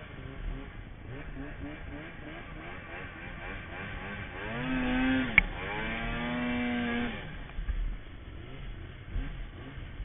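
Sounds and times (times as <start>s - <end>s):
snowmobile engine: 0.0s - 10.0s.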